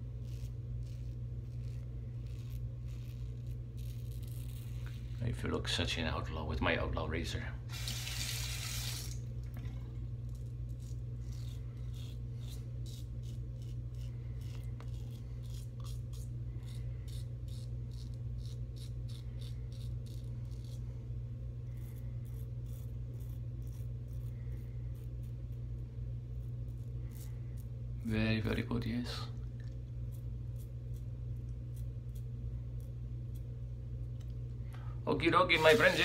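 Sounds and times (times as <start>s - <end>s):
razor scraping stubble: 0.0s - 5.8s, 10.1s - 21.0s, 21.6s - 25.7s, 35.3s - 36.0s
steady low hum: 0.0s - 36.0s.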